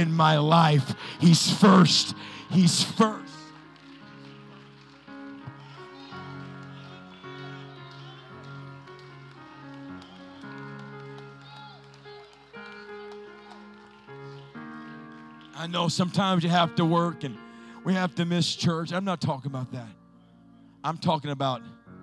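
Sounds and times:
people praying: 0.0s - 3.5s
person preaching: 0.0s - 3.5s, 15.6s - 20.0s, 20.8s - 21.8s
keyboard sustained chords: 0.0s - 22.0s.

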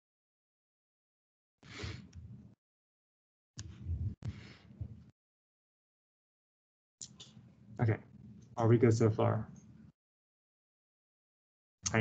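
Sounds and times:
man speaking: 7.8s - 8.0s, 8.6s - 9.5s.

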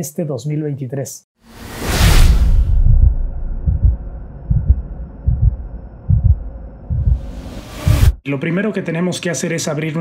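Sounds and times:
deep double thumps: 2.6s - 8.2s.

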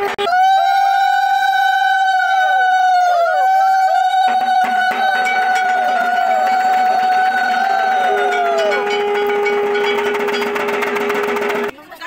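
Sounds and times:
long blown tones: 0.0s - 11.7s
rapid clanging percussion: 4.1s - 11.8s.

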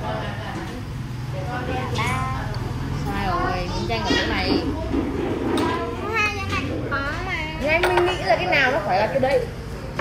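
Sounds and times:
children talking and calling out: 1.6s - 8.8s.

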